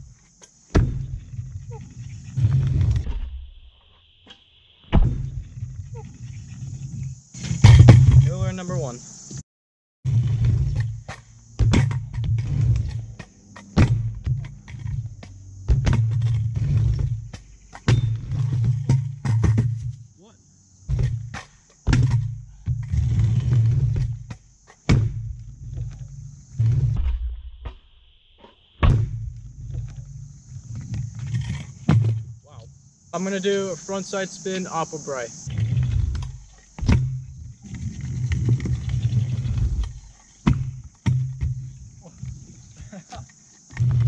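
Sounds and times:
scooter landing clacks and knocks: 0.3 - 1.7, 4.9 - 5.9, 10.4 - 20.0, 20.8 - 27.8, 28.4 - 32.4, 35.6 - 42.0
scooter wheels rolling on concrete: 10.1 - 19.9, 20.9 - 27.0, 29.3 - 32.2, 33.2 - 44.0.

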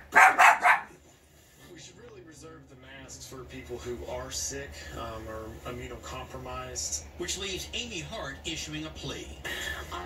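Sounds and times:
dog barking: 0.0 - 1.0.

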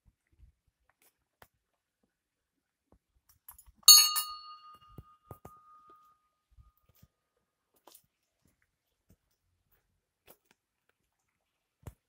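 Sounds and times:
small bell ringing: 3.9 - 6.2.

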